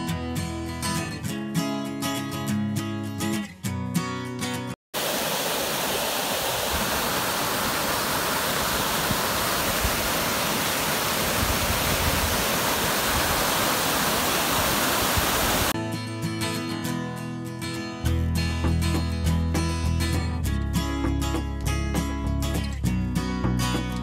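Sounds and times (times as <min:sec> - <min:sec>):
strummed guitar music: 0:00.0 - 0:04.7, 0:15.8 - 0:24.0
waterfall pouring over rocks: 0:05.0 - 0:15.8.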